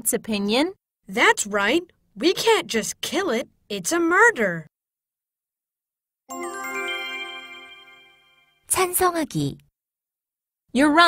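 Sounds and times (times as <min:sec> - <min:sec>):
bright bell-like chime: 0:06.3 - 0:08.7.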